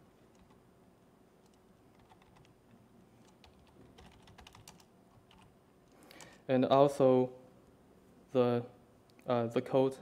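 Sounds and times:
typing on laptop keyboard: 1.4 - 2.6, 3.2 - 5.5.

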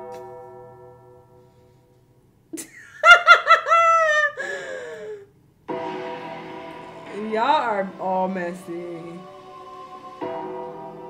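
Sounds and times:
woman laughing loudly: 2.6 - 5.2.

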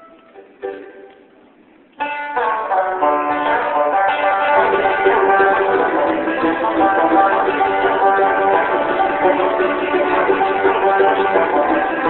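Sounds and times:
banjo: 0.0 - 12.0
bluegrass string band playing: 0.0 - 12.0.

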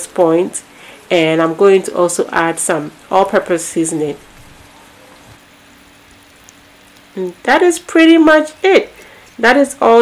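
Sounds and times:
faint steady hum: 0.0 - 10.0
stew sizzling in a pot: 0.0 - 10.0.

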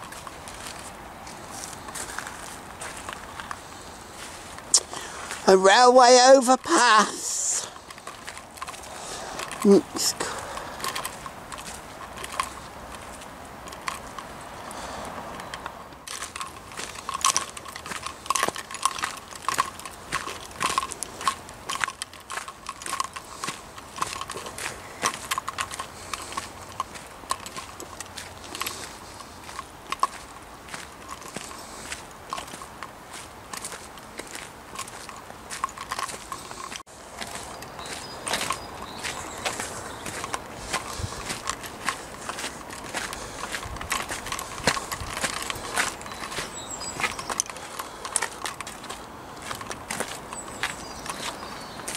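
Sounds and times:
footsteps crunching on gravel: 0.0 - 51.9.

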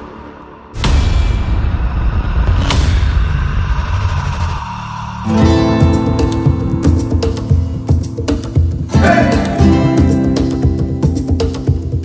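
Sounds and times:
deep boom hit with rumble: 0.8 - 5.2.

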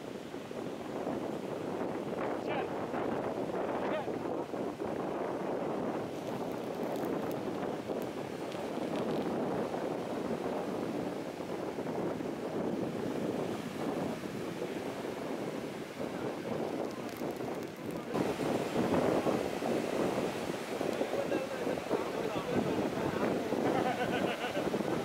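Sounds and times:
sea surf breaking: 0.0 - 25.0
wind buffeting microphone: 0.0 - 25.0.

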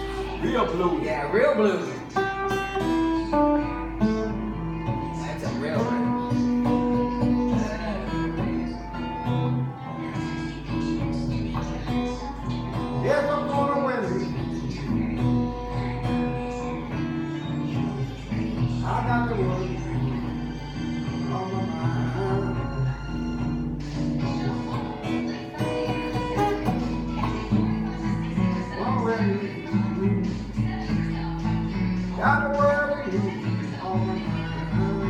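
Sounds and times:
acoustic blues guitar: 0.0 - 35.0.

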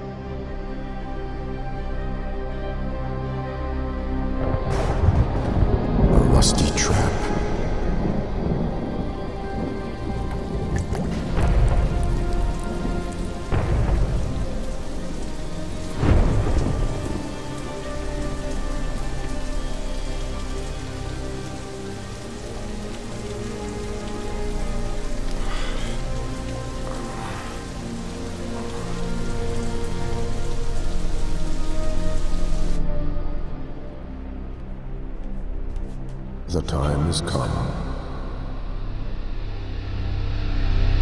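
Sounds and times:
sustained musical drone: 0.0 - 37.4
heavy rain: 0.0 - 41.0
thunder cracks: 4.4 - 12.2, 16.0 - 17.3.

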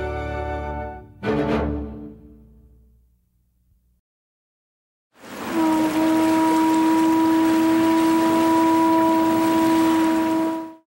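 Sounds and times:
ship's horn blast: 5.3 - 10.9.

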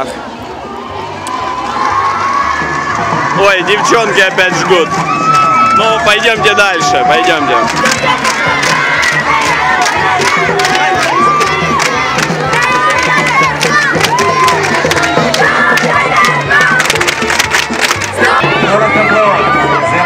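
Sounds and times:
girls chanting and shouting: 7.4 - 20.0
plastic handheld percussion strikes: 7.5 - 18.4.

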